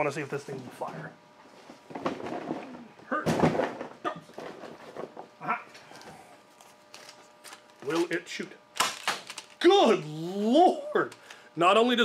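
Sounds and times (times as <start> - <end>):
rustling and small knocks: 0.7 - 5.4.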